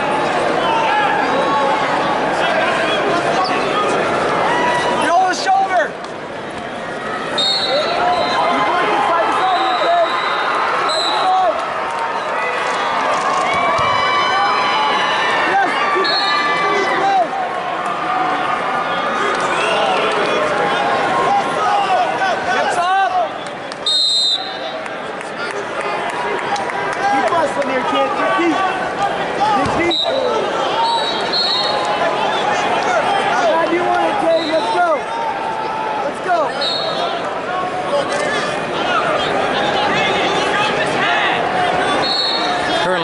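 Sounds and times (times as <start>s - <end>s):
crowd shouting and talking: 0.0s - 43.0s.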